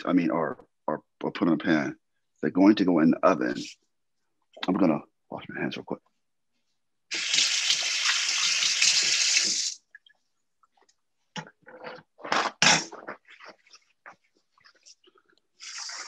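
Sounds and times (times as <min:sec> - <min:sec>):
tap water running: 0:07.1 - 0:10.1, 0:15.6 - 0:16.0.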